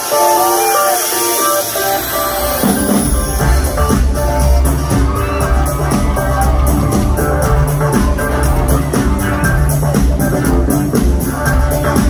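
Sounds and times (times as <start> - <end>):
live band with guitar: 0.0 - 12.0.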